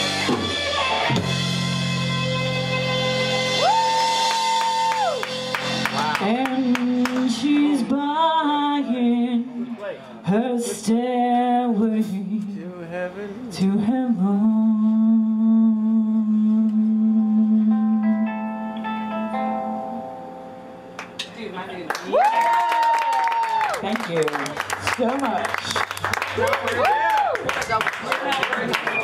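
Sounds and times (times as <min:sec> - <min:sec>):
electric guitar: 0:00.0 - 0:08.3, 0:16.5 - 0:21.4
woman singing: 0:06.1 - 0:12.6, 0:13.5 - 0:18.8.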